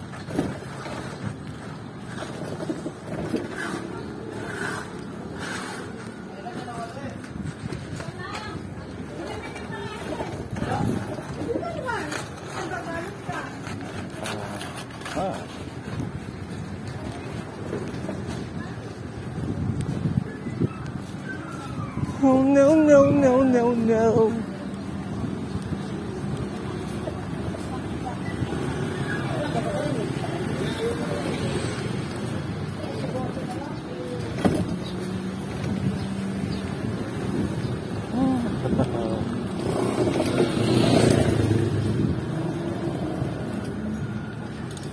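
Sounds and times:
road noise: 0:00.0 - 0:44.9
people's voices: 0:00.3 - 0:44.9.

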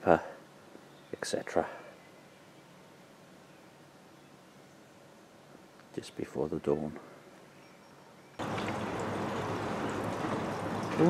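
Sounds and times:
steady rain: 0:08.4 - 0:11.0.

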